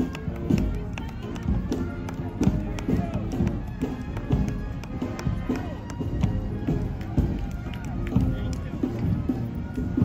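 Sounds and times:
background music: 0.0 - 10.0
people talking over one another: 0.0 - 10.0.

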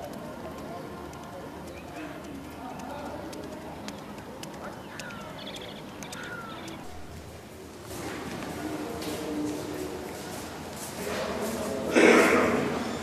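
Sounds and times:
murmur of distant voices: 0.0 - 13.0
birds chirping: 0.6 - 7.7.

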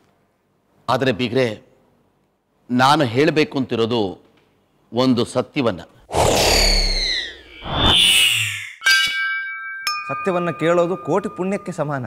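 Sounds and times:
swish: 6.2 - 8.7
bell-like tone ringing: 8.5 - 12.0.

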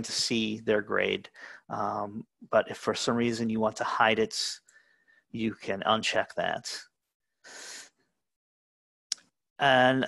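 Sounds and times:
person inhaling: 1.3 - 1.7, 7.4 - 7.9.

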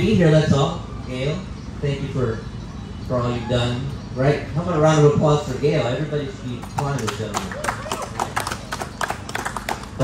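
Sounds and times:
scattered applause: 6.6 - 10.0.

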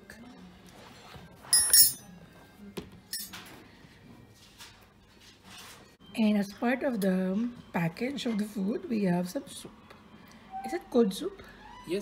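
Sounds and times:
tableware clinking: 1.5 - 2.2, 3.1 - 3.5.

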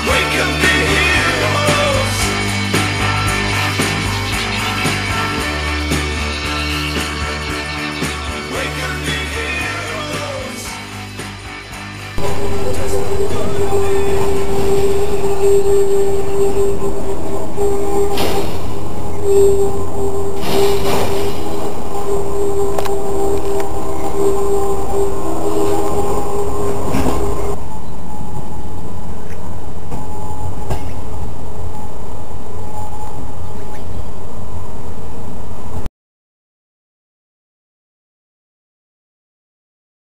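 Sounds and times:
low train rumble: 0.0 - 35.9
high wheel squeal: 12.2 - 34.1.

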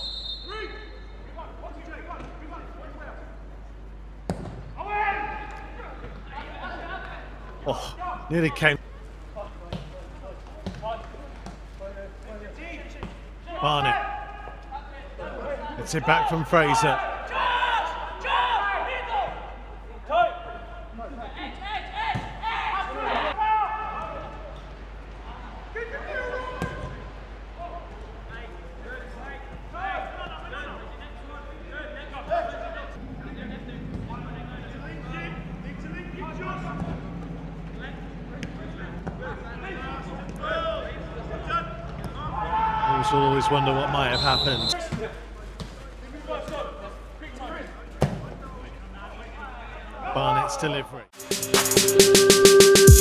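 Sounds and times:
men calling and shouting: 4.7 - 11.4, 12.1 - 24.4, 27.4 - 45.4.

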